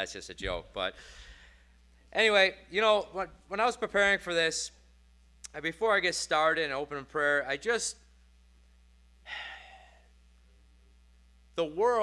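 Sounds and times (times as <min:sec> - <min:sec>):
faint steady hum: 0:00.0 - 0:12.0
man sighing: 0:09.3 - 0:10.0.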